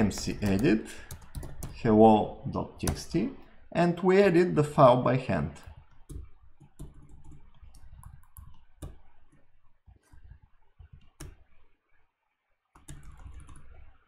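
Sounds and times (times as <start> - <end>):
keyboard keys clicking: 0.0 - 1.8, 12.8 - 13.9.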